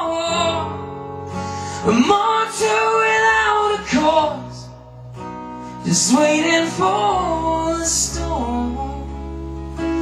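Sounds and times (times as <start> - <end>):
man singing: 0.0 - 1.0, 1.6 - 4.9, 5.7 - 10.0
acoustic guitar chord strummed: 0.0 - 10.0.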